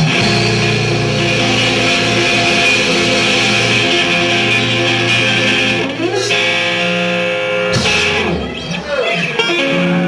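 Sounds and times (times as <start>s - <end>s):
bass guitar: 0.0s - 10.0s
drums: 0.0s - 10.0s
electric guitar: 0.0s - 10.0s.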